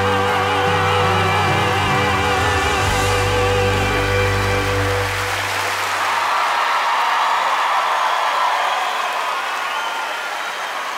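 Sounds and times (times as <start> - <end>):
band final chord: 0.0 - 6.0
audience applauding: 0.0 - 10.9.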